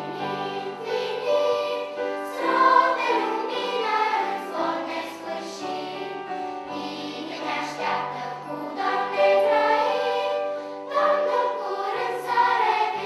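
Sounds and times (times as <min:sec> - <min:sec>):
children's choir singing: 0:00.0 - 0:13.0.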